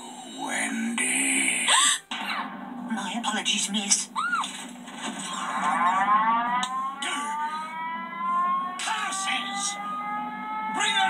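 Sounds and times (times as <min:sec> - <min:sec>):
air-raid siren winding up: 0:05.4 - 0:11.0.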